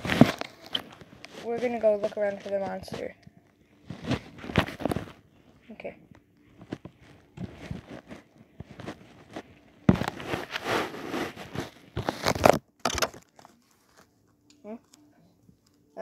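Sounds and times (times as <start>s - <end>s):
plush toys rustling on carpet: 0.0s - 3.1s, 3.8s - 5.8s, 6.5s - 12.6s.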